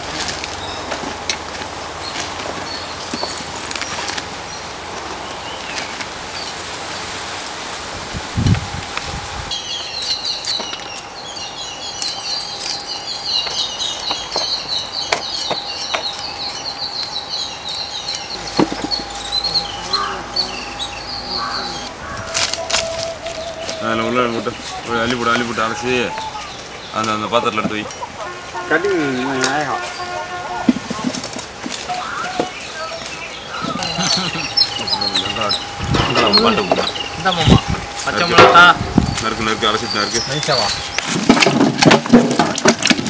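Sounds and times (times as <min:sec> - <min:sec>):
steady background hiss: 0:00.0 - 0:43.0
small birds twittering: 0:01.8 - 0:07.2, 0:09.5 - 0:41.7.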